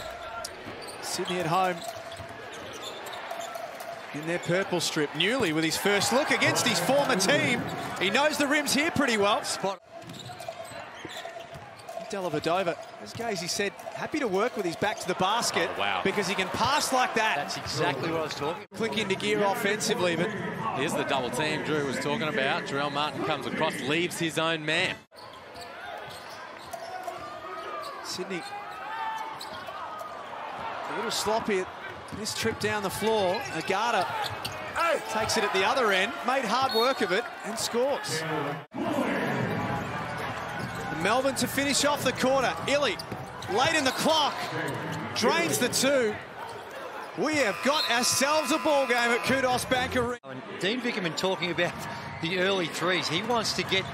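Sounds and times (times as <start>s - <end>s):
players' voices: 0.0s - 53.9s.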